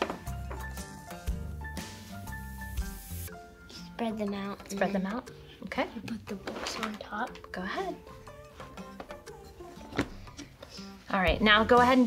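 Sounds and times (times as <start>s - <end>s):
books set down on table: 0.0s - 0.8s, 6.4s - 7.0s, 9.8s - 10.4s
quiet background music: 0.0s - 12.0s.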